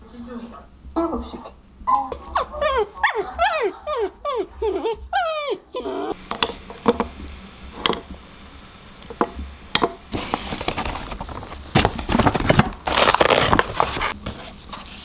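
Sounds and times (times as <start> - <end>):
small dog whining: 1.8 - 6.2.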